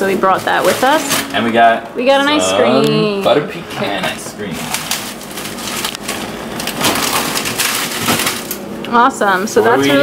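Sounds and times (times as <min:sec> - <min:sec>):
plastic bags crinkling: 0:00.0 - 0:01.7, 0:04.0 - 0:09.8.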